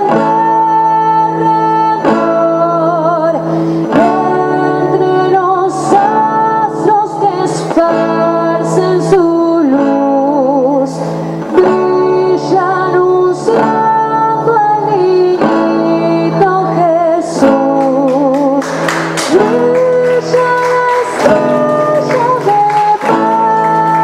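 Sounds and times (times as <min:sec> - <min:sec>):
acoustic guitar: 0:00.0 - 0:24.0
woman singing with vibrato: 0:00.0 - 0:24.0.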